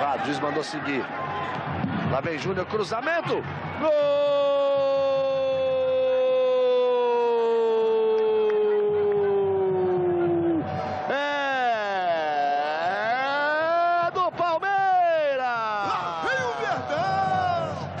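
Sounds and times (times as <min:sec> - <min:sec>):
commentator shouting goal: 0:11.0 - 0:18.0.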